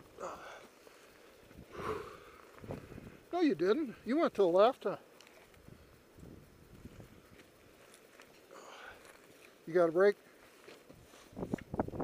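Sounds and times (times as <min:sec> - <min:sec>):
small scuffs and ticks: 0:04.6 - 0:11.8.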